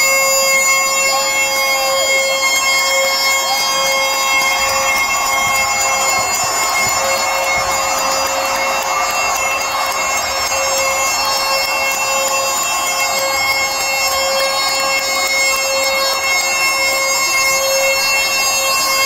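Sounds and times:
bagpipes playing: 0.0s - 19.0s
crowd noise: 0.0s - 19.0s.

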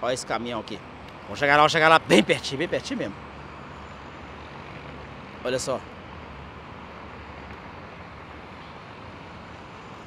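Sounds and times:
distant vehicles: 0.0s - 10.0s.

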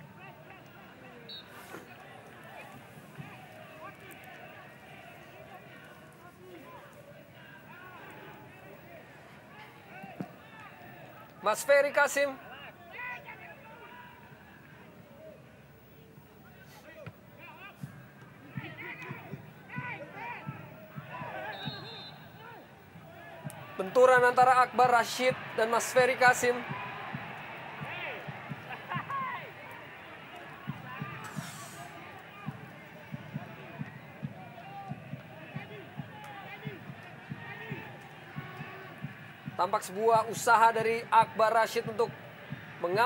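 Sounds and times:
crowd and players shouting: 0.0s - 43.0s.

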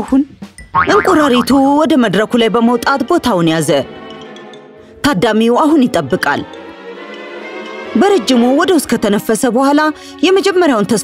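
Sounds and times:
background music: 0.0s - 11.0s
cartoon boing sound effect: 0.7s - 1.7s
cartoon character voice: 0.8s - 1.7s.

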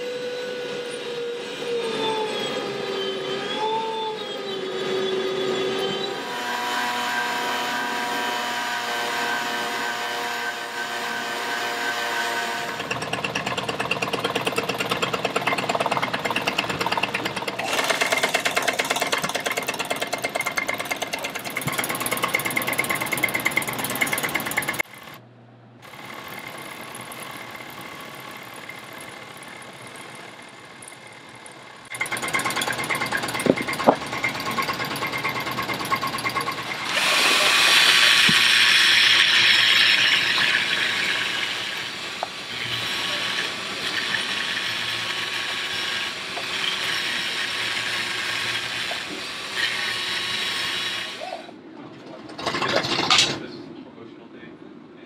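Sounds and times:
sewing machine motor hum: 4.4s - 25.2s, 25.8s - 51.2s
electric trimmer buzzing: 6.2s - 25.2s, 31.8s - 51.2s.

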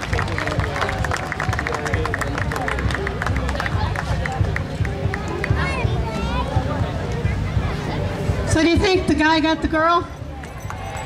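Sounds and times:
crowd voices: 0.0s - 11.0s.

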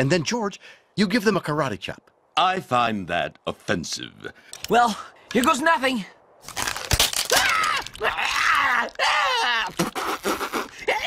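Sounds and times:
cartoon voice yelling and groaning: 7.4s - 9.8s.

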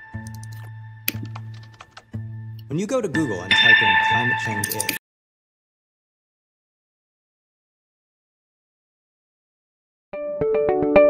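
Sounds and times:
keyboard keystrokes: 0.2s - 2.2s.

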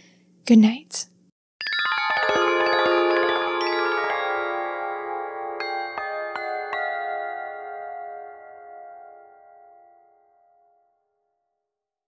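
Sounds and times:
ringing chime-like bell tones: 1.6s - 10.8s.

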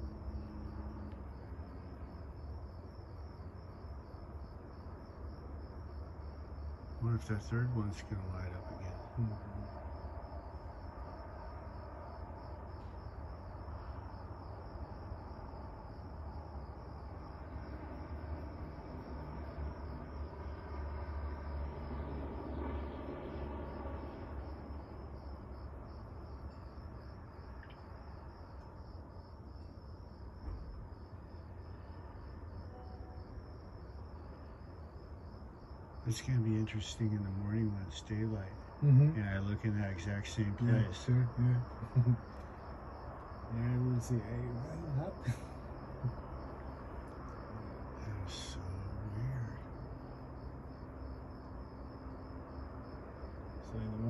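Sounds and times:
crickets chirping: 0.0s - 54.0s
low background rumble: 0.0s - 54.0s.

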